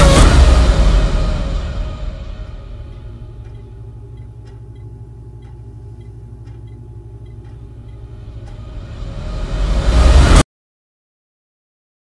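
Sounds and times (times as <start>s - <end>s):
low rumbling drone: 0.0s - 10.4s
faint ticks: 3.5s - 8.6s.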